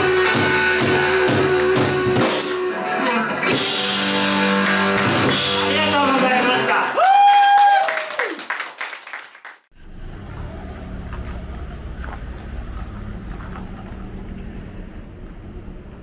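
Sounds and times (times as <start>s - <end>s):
applause: 4.1s - 9.7s
low outdoor rumble: 9.7s - 16.0s.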